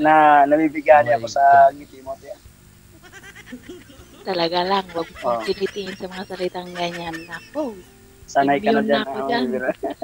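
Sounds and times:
faint voices: 0:00.0 - 0:02.4, 0:04.2 - 0:10.0
louder speech: 0:08.4 - 0:10.0.

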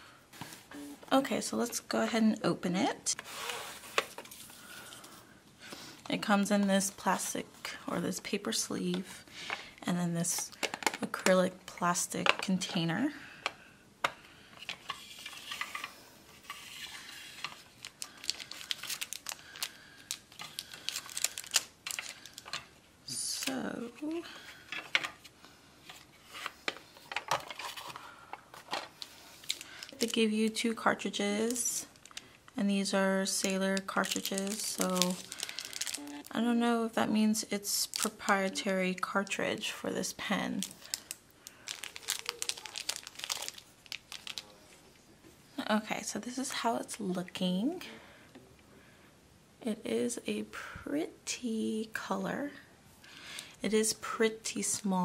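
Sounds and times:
plastic pen case handled: 0:10.5 - 0:11.4
plastic sleeve crinkling: 0:14.6 - 0:23.6, 0:25.8 - 0:36.5, 0:37.7 - 0:38.6, 0:40.5 - 0:44.7.

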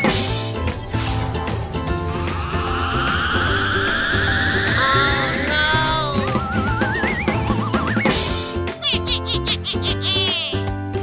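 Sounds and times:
wobbling tone sliding upward: 0:01.1 - 0:07.8
children's background music: 0:02.6 - 0:11.0.

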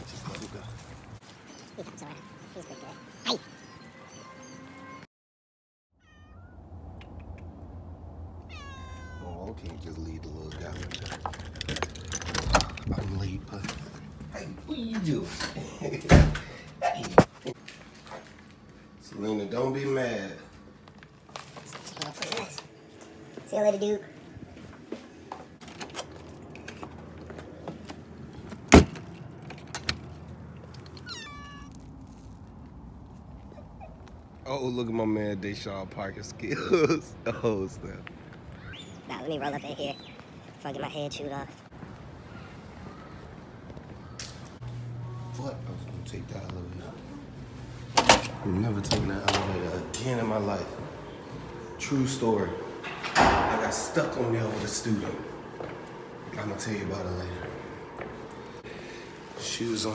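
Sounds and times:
cat meowing: 0:06.0 - 0:06.7, 0:08.4 - 0:09.6, 0:31.0 - 0:31.9
pet crying: 0:06.0 - 0:06.7, 0:08.4 - 0:09.6, 0:30.9 - 0:31.8
door slamming: 0:15.4 - 0:16.6, 0:28.7 - 0:29.2, 0:47.9 - 0:50.0, 0:52.7 - 0:54.7.

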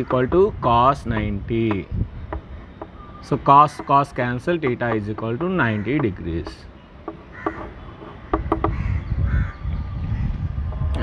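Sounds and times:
bird calling faintly: 0:00.0 - 0:10.4
chalk tapping on blackboard: 0:03.7 - 0:08.8.

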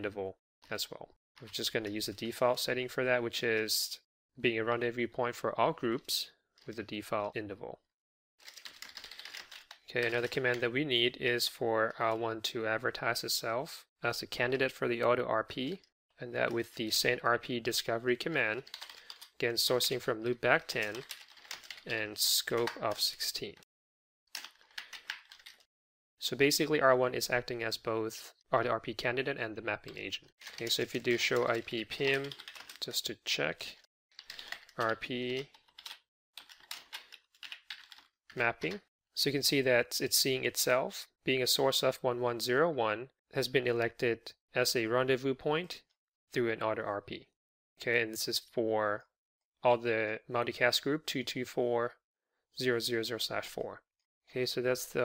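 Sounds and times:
keyboard typing: 0:08.4 - 0:10.6, 0:18.4 - 0:20.0, 0:20.6 - 0:23.0, 0:24.3 - 0:25.7, 0:29.9 - 0:32.9, 0:34.2 - 0:38.8.

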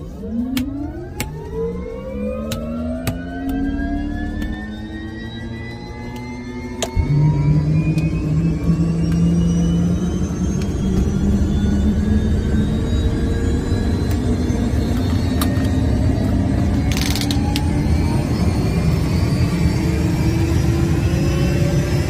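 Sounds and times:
deep steady rumble: 0:00.0 - 0:22.0
jet engine whine: 0:00.0 - 0:22.0.

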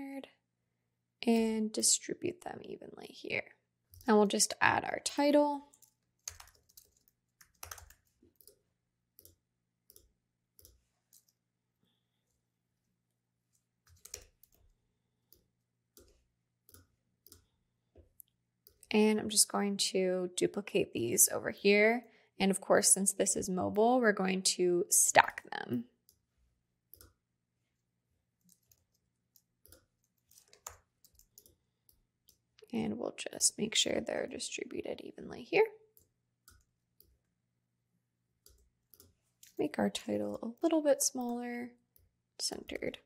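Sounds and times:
computer mouse clicks: 0:09.2 - 0:11.4, 0:26.9 - 0:27.2, 0:28.4 - 0:32.4, 0:38.4 - 0:39.6.

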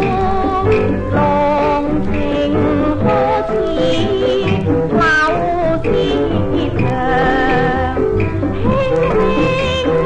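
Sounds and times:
instrumental accompaniment: 0:00.0 - 0:10.0
woman singing: 0:00.0 - 0:10.0.

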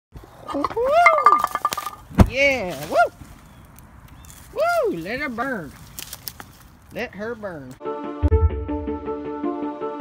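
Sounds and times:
man whooping: 0:02.8 - 0:03.2.

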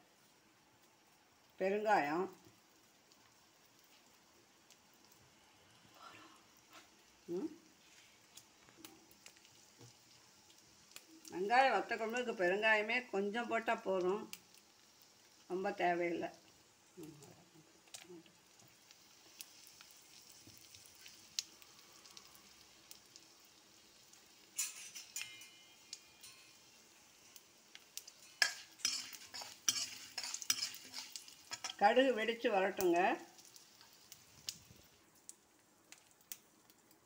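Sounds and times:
spices sizzling in oil: 0:00.0 - 0:37.0
metal ladle scraping: 0:24.6 - 0:26.6, 0:28.1 - 0:31.8
crackling and clicks: 0:32.8 - 0:37.0.

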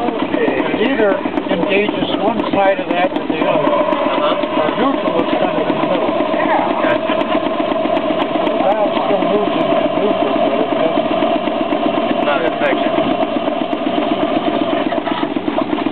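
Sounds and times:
steam engine running: 0:00.0 - 0:15.9.

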